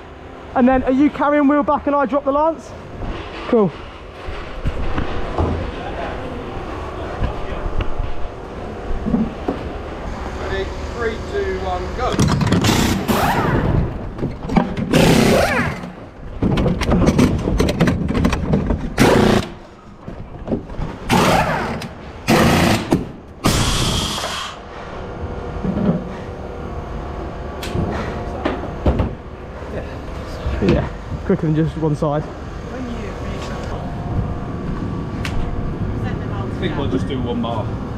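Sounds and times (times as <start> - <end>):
pneumatic wheel guns firing: 12.2 - 13.8, 14.8 - 16.0, 18.9 - 19.6, 21.1 - 24.6
hiss of air: 23.4 - 24.6.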